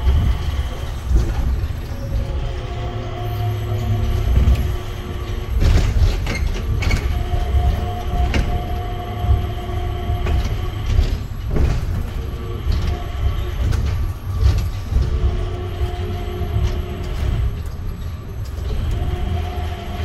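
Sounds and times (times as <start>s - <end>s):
hum of steady tones: 0.0s - 20.0s
train cabin low rumble: 0.0s - 20.0s.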